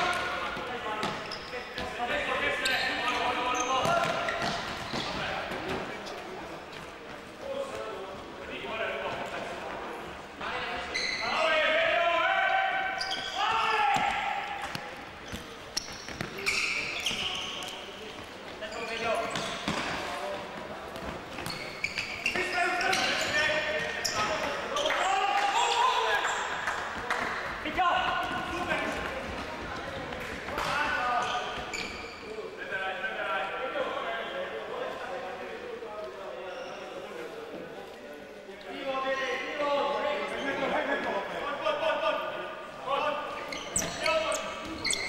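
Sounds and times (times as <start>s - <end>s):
players shouting: 11.3s - 14.7s.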